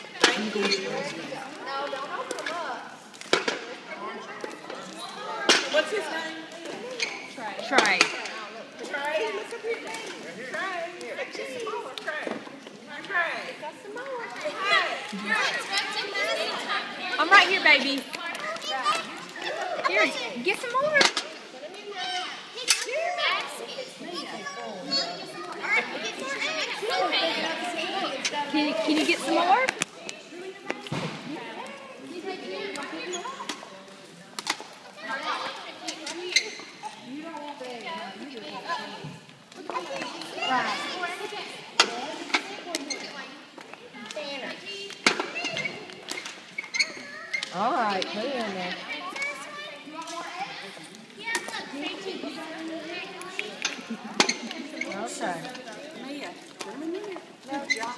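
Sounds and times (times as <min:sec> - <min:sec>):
young children chattering: 0:00.0 - 0:57.9.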